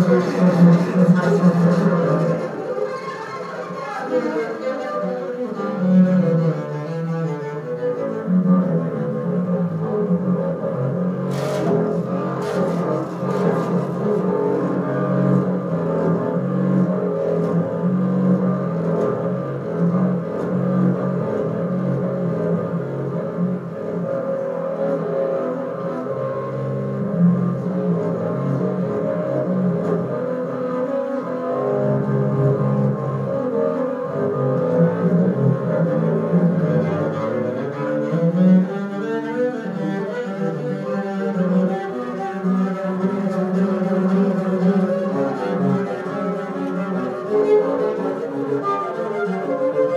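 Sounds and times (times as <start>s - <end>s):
bowed double bass: 0.0s - 49.9s.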